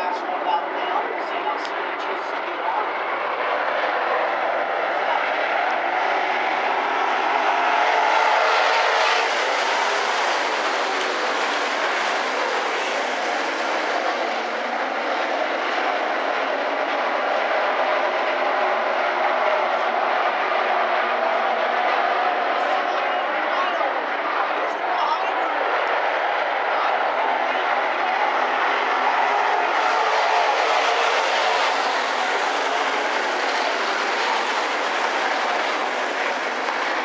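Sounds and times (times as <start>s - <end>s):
race car engines at speed: 0.0s - 37.0s.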